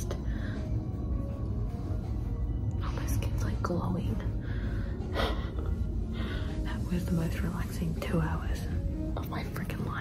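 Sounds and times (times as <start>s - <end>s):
quiet background music: 0.0s - 10.0s
soft whispering: 2.7s - 5.3s.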